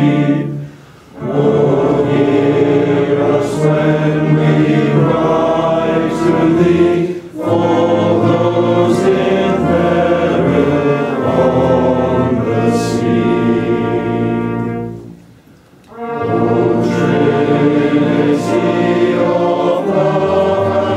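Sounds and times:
congregation singing a hymn: 0.0s - 15.2s, 15.9s - 20.9s.

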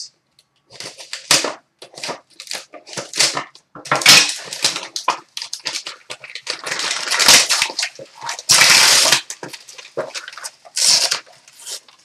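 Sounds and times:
foil wrapping tearing and crumpling: 0.7s - 12.0s.

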